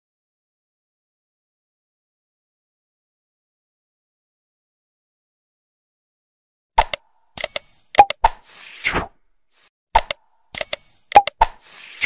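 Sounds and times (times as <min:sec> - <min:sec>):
sharp clicks: 0:06.8 - 0:08.3, 0:10.0 - 0:11.6
bell-like ding: 0:10.6 - 0:11.2.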